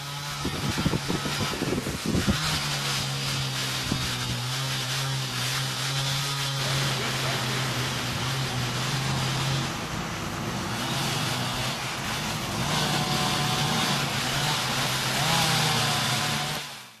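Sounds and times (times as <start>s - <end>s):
outdoor noise: 0.0s - 17.0s
truck engines idling: 6.5s - 16.2s.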